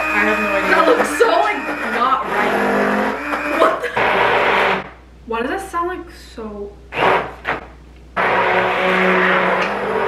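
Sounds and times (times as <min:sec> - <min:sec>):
stick blender whirring: 0:00.0 - 0:05.0, 0:06.9 - 0:10.0.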